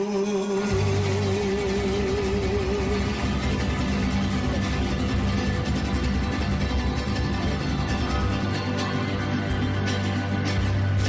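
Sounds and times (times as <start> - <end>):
mariachi band playing: 0.6 - 11.0.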